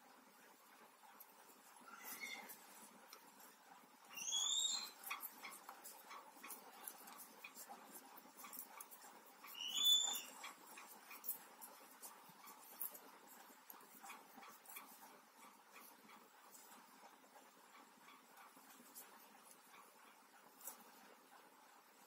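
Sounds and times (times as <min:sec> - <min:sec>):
knitting needles ticking: 0:00.0 - 0:22.0
high-pitched animal calls: 0:01.8 - 0:02.6, 0:04.2 - 0:05.6, 0:09.5 - 0:10.6.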